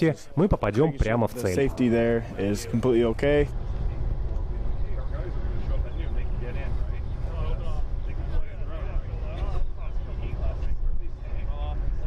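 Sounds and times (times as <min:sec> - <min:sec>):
man speaking: 0:00.0 - 0:03.5
faint voices: 0:01.0 - 0:12.0
low engine rumble: 0:02.2 - 0:12.0.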